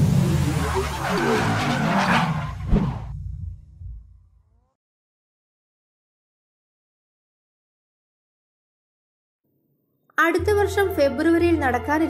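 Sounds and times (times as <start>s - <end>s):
tyre screech: 0.6s - 3.1s
low rumble: 2.7s - 4.4s.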